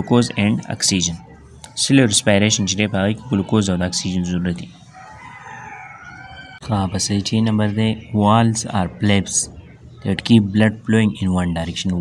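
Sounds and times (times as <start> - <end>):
speech: 0.0 - 4.8, 6.6 - 12.0.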